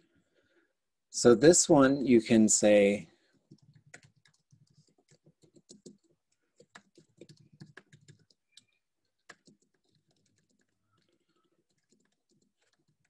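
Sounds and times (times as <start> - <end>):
typing on computer keyboard: 3.5 - 13.0.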